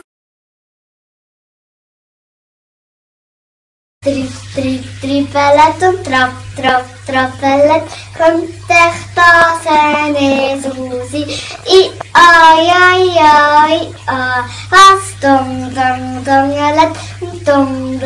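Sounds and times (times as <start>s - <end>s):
girl singing unaccompanied: 4.0s - 18.0s.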